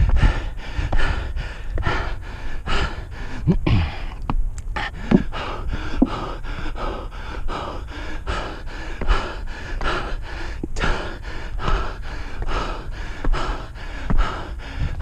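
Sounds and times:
hard rhythmic breathing: 0.0 - 15.0
footfalls on wooden steps: 5.0 - 5.4, 11.6 - 15.0.

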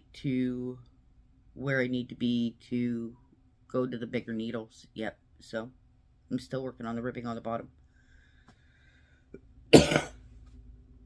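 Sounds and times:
woman coughing: 9.7 - 10.2.

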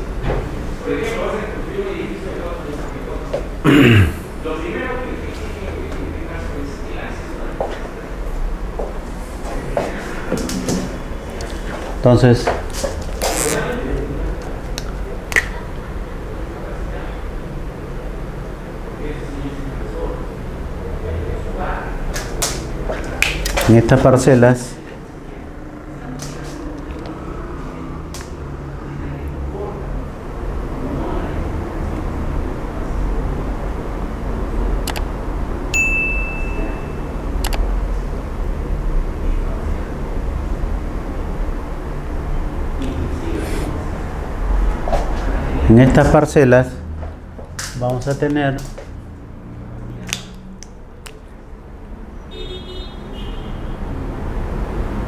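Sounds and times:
room noise: 0.0 - 52.4
sharp click: 34.9 - 35.1
bell-like ding: 35.8 - 37.2.

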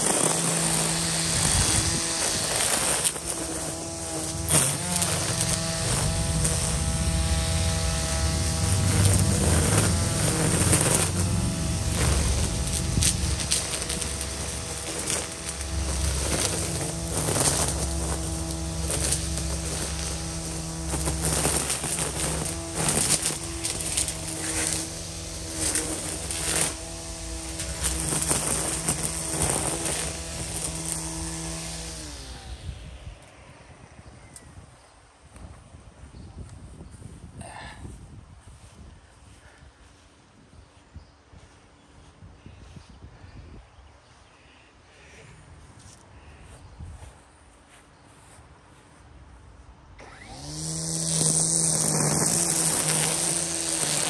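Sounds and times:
string trimmer electric whine: 0.0 - 42.8, 44.9 - 54.0
line cutting weeds: 0.0 - 43.3, 44.1 - 54.0.

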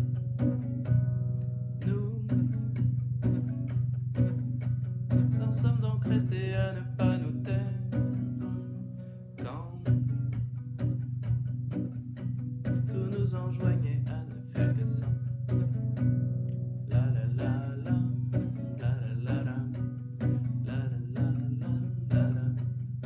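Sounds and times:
nylon-string guitar strumming: 0.0 - 23.0.

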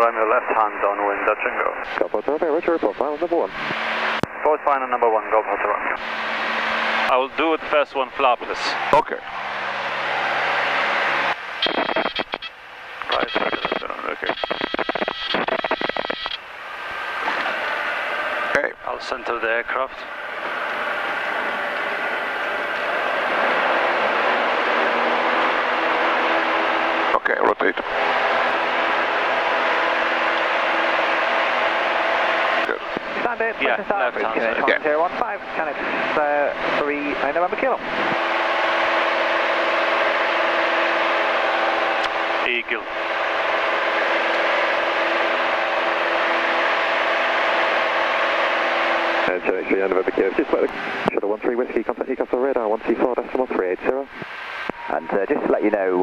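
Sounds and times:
light aircraft engine drone: 0.0 - 56.0.

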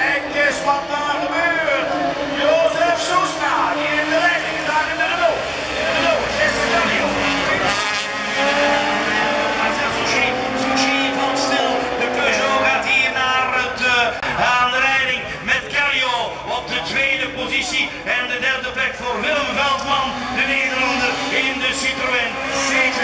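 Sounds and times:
race car engines revving: 0.0 - 23.0.

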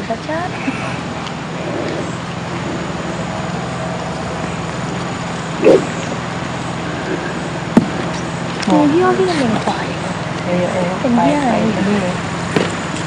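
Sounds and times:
low hum and hiss: 0.0 - 13.0.

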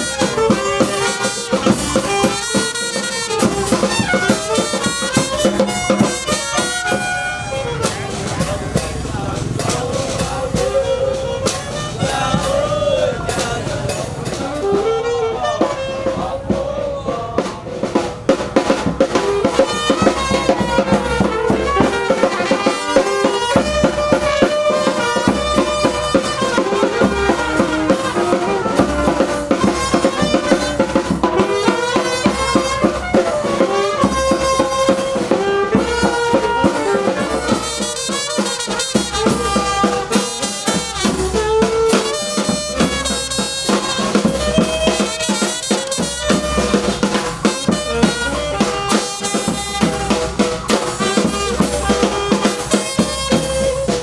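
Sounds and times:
brass band playing: 0.0 - 54.0
snare and bass drum beat: 0.0 - 54.0.

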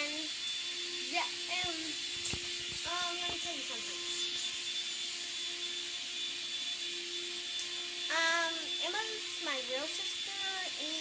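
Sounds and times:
faint steady hum: 0.0 - 11.0
steady hiss: 0.0 - 11.0.

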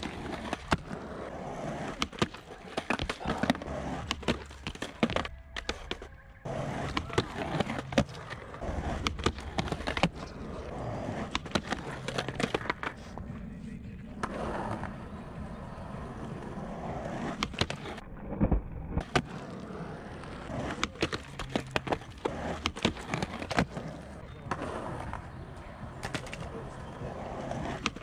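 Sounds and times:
skateboard clacks: 0.0 - 13.3, 14.1 - 28.0
skateboard wheels rolling on concrete: 0.0 - 28.0.

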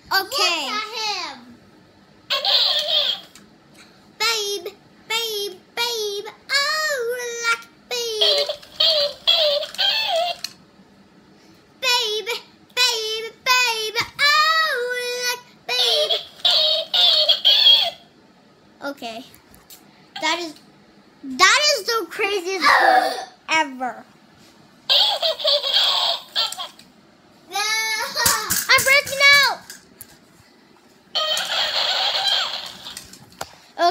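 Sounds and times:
toy bird squeaky mimicking voice: 2.3 - 3.4, 8.0 - 10.5, 15.8 - 18.1, 24.9 - 26.8, 31.2 - 33.0
toy repeating speech in high voice: 2.3 - 3.4, 4.2 - 10.5, 11.8 - 18.0, 20.2 - 20.6, 24.9 - 26.8, 27.5 - 29.7.

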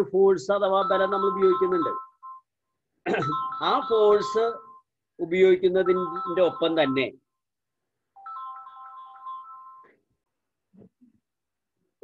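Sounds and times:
electronic ringtone melody: 0.7 - 10.2.

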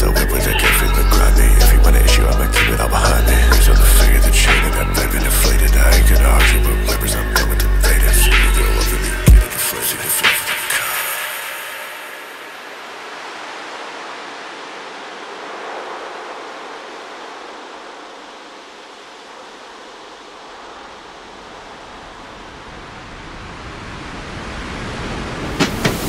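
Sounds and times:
filtered white noise wash: 0.0 - 26.0.

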